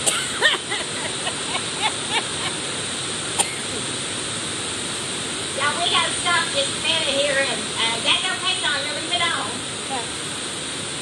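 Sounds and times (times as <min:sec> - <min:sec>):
heavy rain on metal roof: 0:00.0 - 0:11.0.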